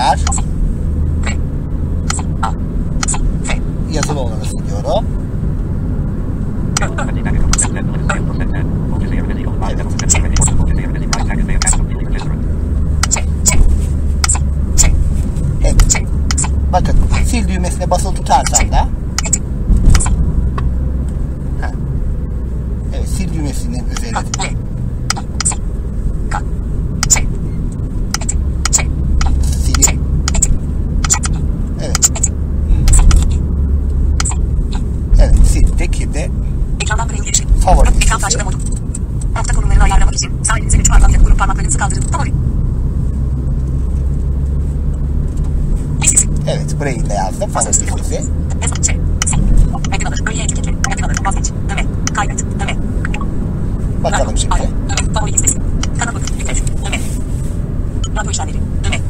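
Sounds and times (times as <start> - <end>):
screen reader voice speaking: 0.0 - 0.5, 2.1 - 5.0, 6.8 - 12.4, 13.0 - 13.7, 14.3 - 15.0, 15.6 - 20.2, 22.9 - 25.6, 26.3 - 27.3, 28.2 - 33.4, 34.2 - 38.6, 39.4 - 42.3, 46.0 - 53.3, 54.0 - 57.1, 58.0 - 59.0
steady low hum: 0.0 - 59.0.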